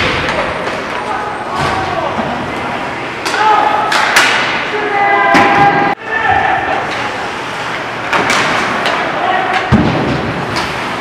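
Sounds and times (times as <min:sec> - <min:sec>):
puck and sticks knocking boards: 0:03.2 - 0:04.6, 0:08.1 - 0:10.9.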